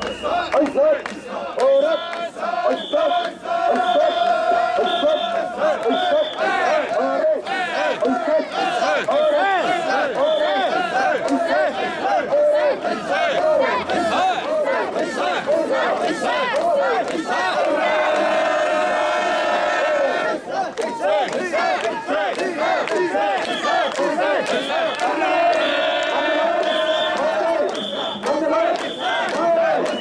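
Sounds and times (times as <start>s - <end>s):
crowd chanting in rhythm: 0.0s - 30.0s.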